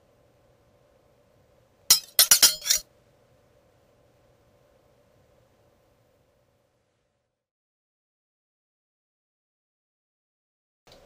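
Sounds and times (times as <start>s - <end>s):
metallic blade clinks: 1.9s - 2.8s.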